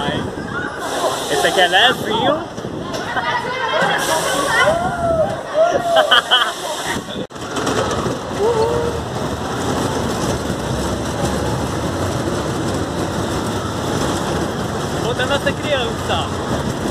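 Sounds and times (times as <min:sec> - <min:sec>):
amusement ride rushing noise: 0:00.0 - 0:16.9.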